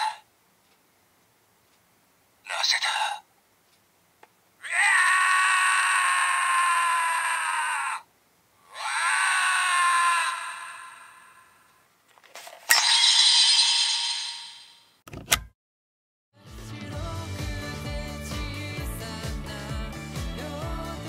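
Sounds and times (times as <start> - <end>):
recorded yelling from toy speaker: 4.6 - 8.1, 8.7 - 11.7.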